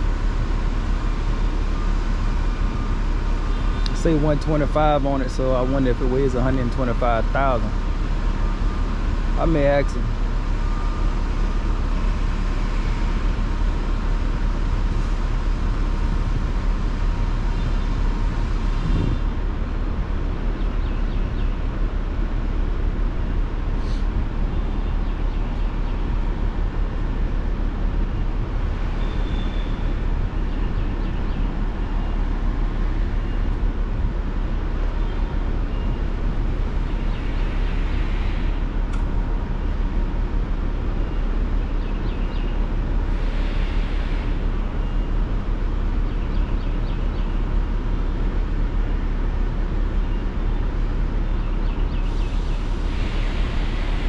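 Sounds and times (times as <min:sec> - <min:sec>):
diesel engine rumbling: 0:00.0 - 0:54.0.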